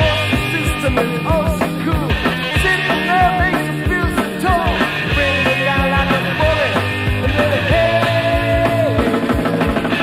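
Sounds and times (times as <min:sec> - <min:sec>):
bass guitar: 0:00.0 - 0:10.0
drum kit: 0:00.0 - 0:10.0.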